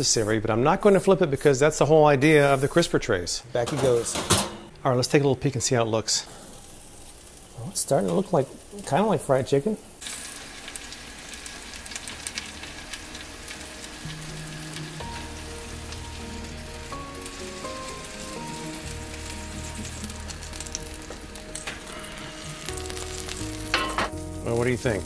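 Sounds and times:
chicken sizzling in oven: 5.7 - 25.0
soft background music: 11.8 - 25.0.

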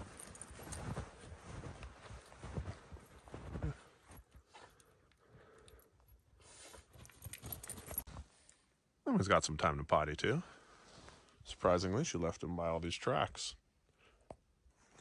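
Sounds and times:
footsteps crunching in snow: 0.0 - 4.3.

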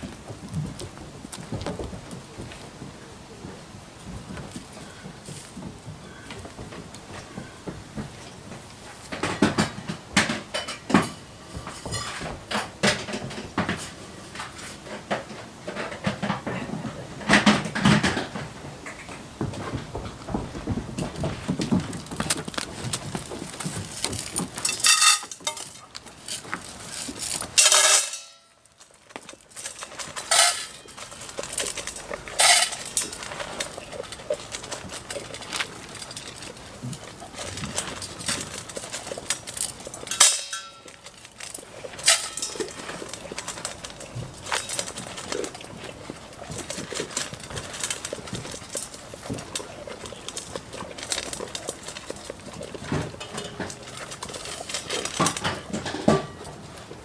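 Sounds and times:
metal feed bowls clinking: 9.0 - 19.2, 22.0 - 57.0.

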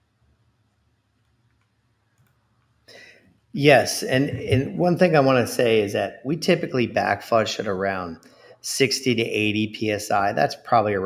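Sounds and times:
person speaking: 3.0 - 11.0
low hum: 3.6 - 7.0.

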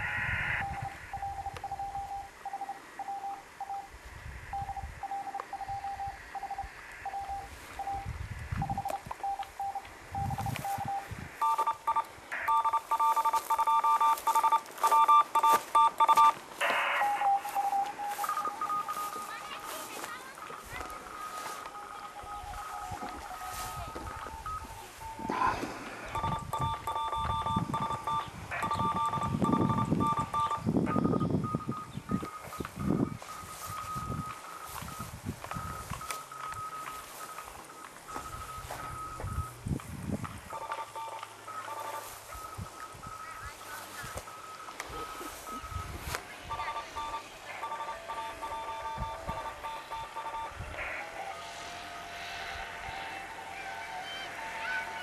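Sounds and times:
radio beeping tones: 0.0 - 3.9, 4.5 - 39.6, 40.5 - 55.0.

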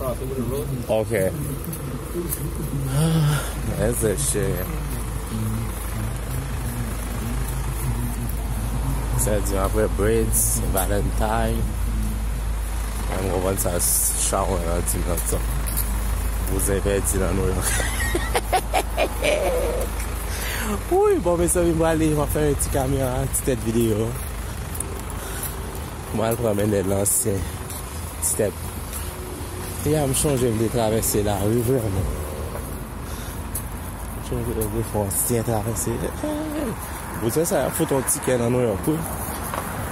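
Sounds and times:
man talking: 0.0 - 18.4, 19.0 - 29.0, 29.6 - 32.5, 34.1 - 39.3
road traffic hum: 0.0 - 39.9
vehicle engine running: 0.0 - 39.9.

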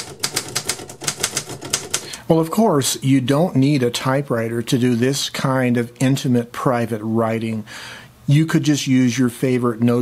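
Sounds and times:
typewriter keys clacking: 0.0 - 2.2.

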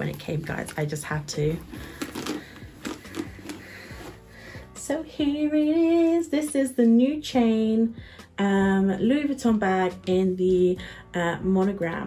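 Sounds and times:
cloth rustling: 0.0 - 4.8.

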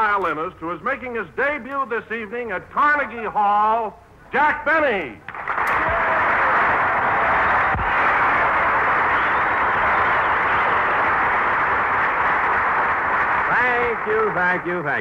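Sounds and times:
studio audience applauding: 5.3 - 15.0.

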